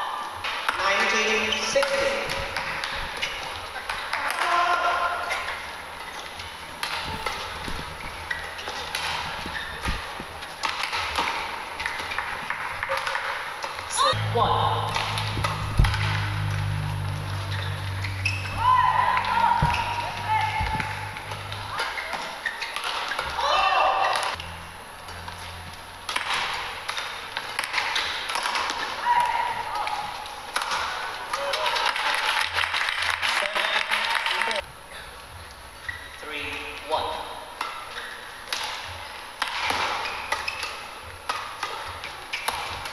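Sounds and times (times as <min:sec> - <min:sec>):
rackets hitting shuttlecock: 0:01.8 - 0:32.6, 0:37.6 - 0:42.9
people cheering: 0:03.9 - 0:05.8, 0:12.1 - 0:22.6, 0:23.2 - 0:24.4, 0:28.8 - 0:34.6
shoes squealing on court: 0:05.3 - 0:11.2, 0:15.8 - 0:24.4, 0:35.8 - 0:36.2, 0:39.6 - 0:42.8
voices: 0:13.9 - 0:22.5.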